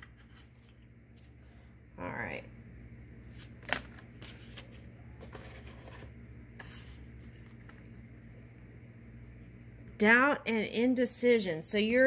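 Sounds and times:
paper cards rustling: 0.0s - 1.6s, 3.3s - 8.0s
steady low hum: 0.0s - 12.0s.

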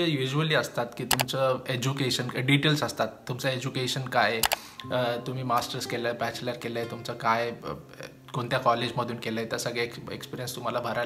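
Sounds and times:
man speaking: 0.0s - 11.0s
soft background music: 0.0s - 11.0s
sharp click: 1.0s - 1.4s, 4.4s - 4.8s.

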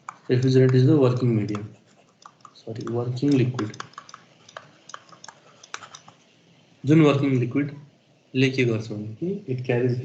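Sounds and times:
light computer clicks: 0.0s - 6.2s
man speaking: 0.2s - 1.8s, 2.5s - 4.0s, 6.8s - 10.0s.

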